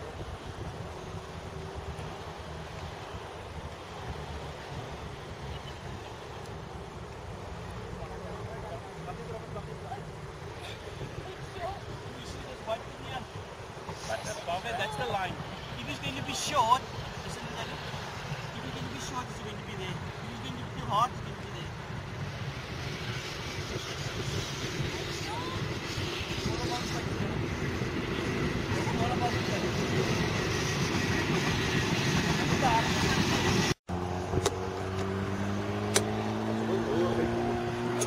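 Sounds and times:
road traffic rumble: 0.0s - 38.0s
sharp click: 35.9s - 36.1s.

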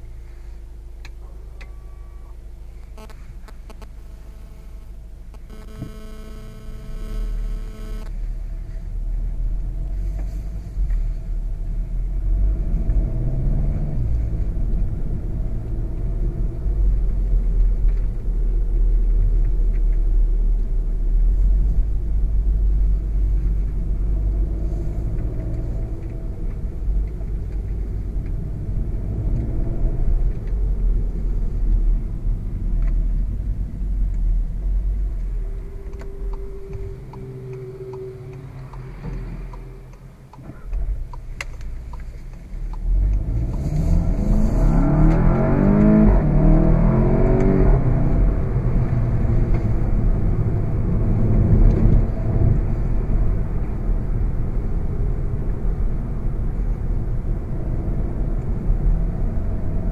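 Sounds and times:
car engine accelerating: 0.0s - 59.9s
heavy low road rumble: 0.0s - 59.9s
steady tone: 2.8s - 8.2s, 34.5s - 40.3s.

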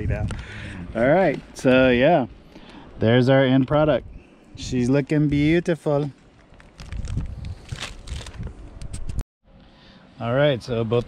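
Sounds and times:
wind buffeting microphone: 0.0s - 1.0s, 6.8s - 9.2s
plastic sheet rustling: 6.4s - 9.0s.

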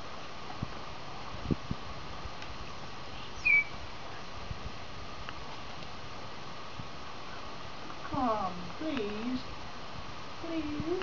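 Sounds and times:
bird chirp: 3.2s - 4.2s.

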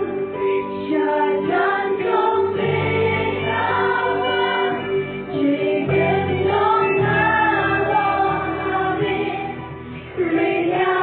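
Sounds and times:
acoustic guitar: 0.0s - 11.0s
women singing gospel song: 0.0s - 11.0s
low bass notes: 2.5s - 11.0s.

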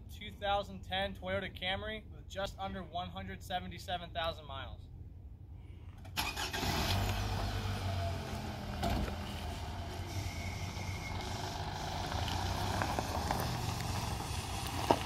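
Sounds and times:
car engine starting and running: 6.1s - 15.0s.

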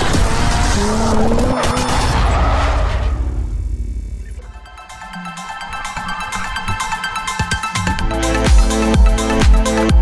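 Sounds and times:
racing car sound effect: 0.0s - 8.2s
intro music: 3.9s - 10.0s.

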